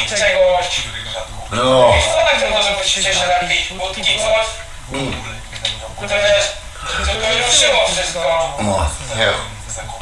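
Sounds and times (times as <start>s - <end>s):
man's voice: 1.4s - 5.4s, 6.0s - 10.0s.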